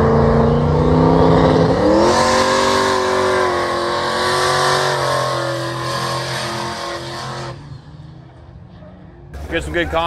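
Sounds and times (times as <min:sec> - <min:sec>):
car engine at high revs: 0:00.0 - 0:08.6.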